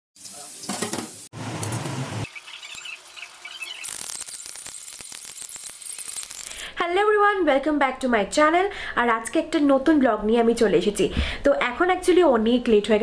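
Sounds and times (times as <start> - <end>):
food sizzling in hot oil: 0.2 - 6.7.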